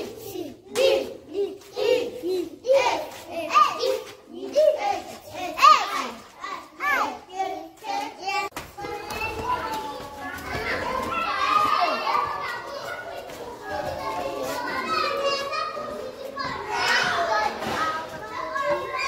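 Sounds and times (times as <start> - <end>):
young children chattering: 0.0 - 19.0.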